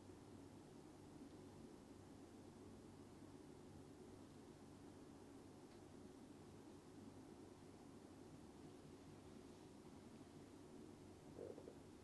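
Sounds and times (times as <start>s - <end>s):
faint stomach gurgle: 11.3s - 12.0s.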